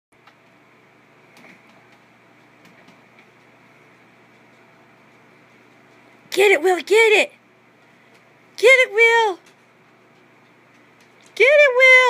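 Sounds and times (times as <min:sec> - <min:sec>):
low room hum: 0:00.2 - 0:12.0.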